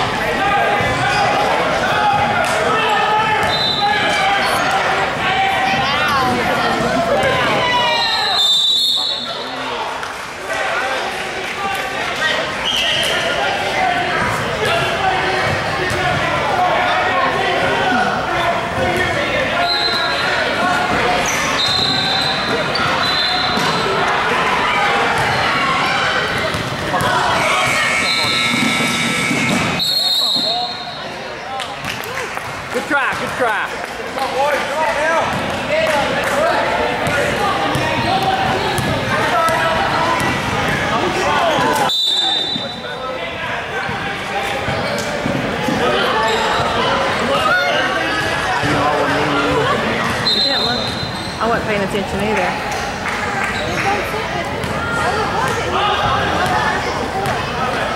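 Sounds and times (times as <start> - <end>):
shouts and chatter: 0.0 - 57.9.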